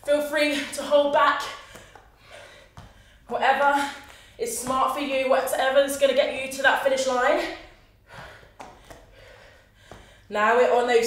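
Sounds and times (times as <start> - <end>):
woman breathing in: 7.9 - 10.3.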